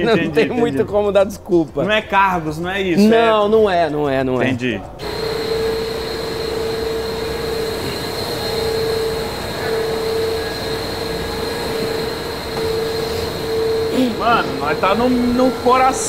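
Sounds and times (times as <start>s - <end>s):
faint high whine: 5.0s - 16.0s
low hum tone: 5.0s - 16.0s
machinery and ventilation drone: 5.0s - 16.0s.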